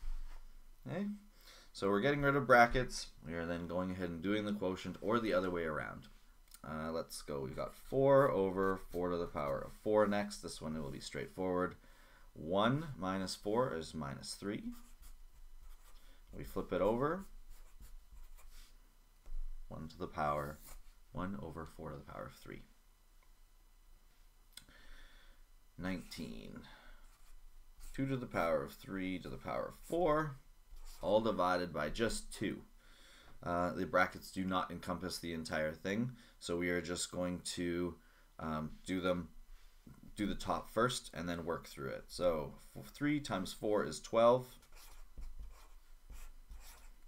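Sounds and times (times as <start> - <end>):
marker writing on paper: 44.6 - 47.0.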